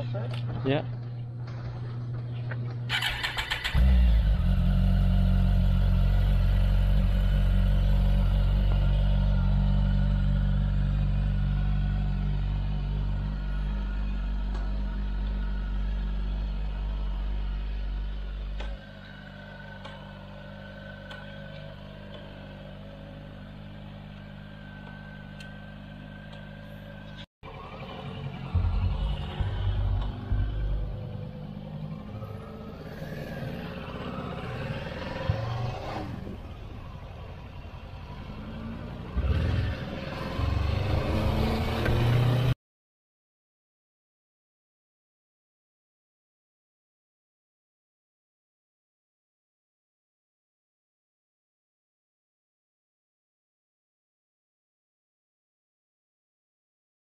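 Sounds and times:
motorcycle engine starting and idling: 0.0 - 42.6
motorcycles revving away: 2.9 - 26.6, 27.5 - 36.6, 37.8 - 42.6.

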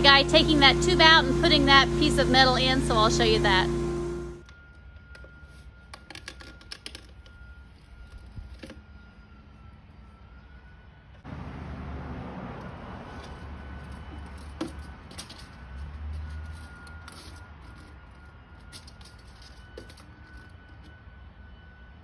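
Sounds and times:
thin high tone: 0.0 - 11.0.

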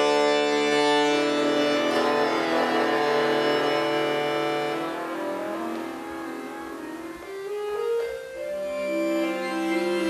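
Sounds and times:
button accordion playing softly: 0.0 - 10.0.

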